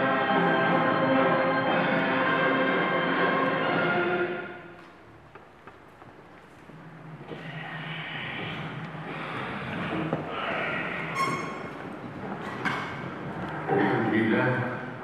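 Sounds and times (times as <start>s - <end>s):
anthem music: 0.0s - 4.8s
small knocks of people sitting: 4.8s - 7.6s, 11.4s - 13.7s.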